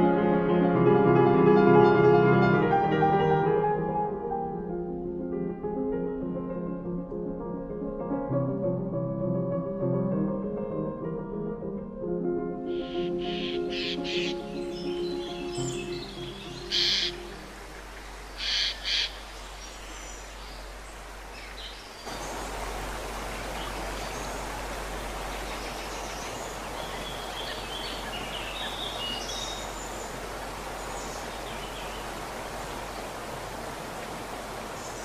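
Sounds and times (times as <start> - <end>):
loud bird calls: 12.8 - 19.5
small birds chirping: 12.8 - 35.0
woodland stream rushing: 12.8 - 35.0.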